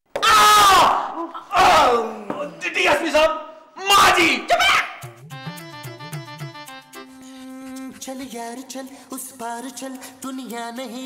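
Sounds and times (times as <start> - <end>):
man yelling: 0.3 - 5.1.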